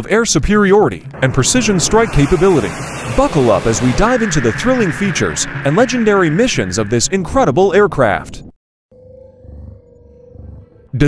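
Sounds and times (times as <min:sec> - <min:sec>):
low rumble: 0:00.0 - 0:08.3
steady tone: 0:00.0 - 0:08.3.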